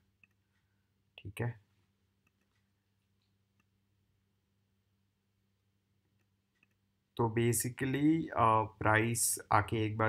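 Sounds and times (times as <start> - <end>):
computer mouse clicks: 0.2 - 0.6, 2.2 - 3.8, 6.1 - 6.8.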